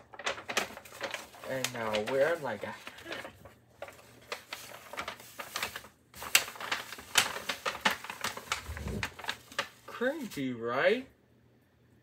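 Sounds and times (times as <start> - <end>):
paper bag crackling: 0.0 - 10.5.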